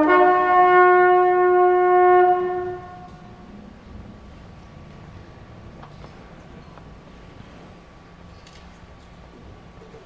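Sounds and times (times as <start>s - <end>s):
brass band sustained note: 0.0s - 4.5s.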